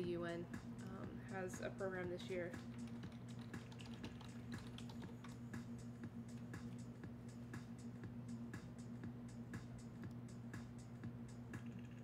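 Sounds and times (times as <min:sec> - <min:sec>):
low electrical hum: 0:00.0 - 0:12.0
typing on computer keyboard: 0:02.8 - 0:05.2.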